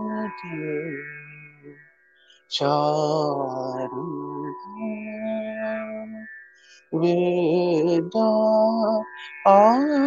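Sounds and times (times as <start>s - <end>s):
man singing long vowel notes: 0.0s - 1.8s, 2.5s - 6.2s, 6.9s - 10.0s.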